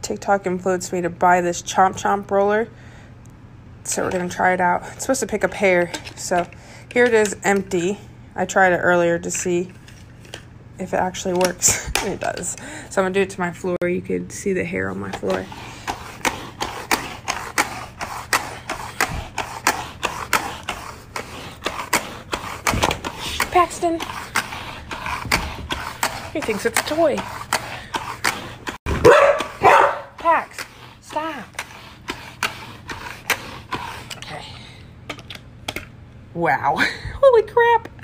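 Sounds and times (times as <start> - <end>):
roller rolling over carpet: 14.8 - 34.3.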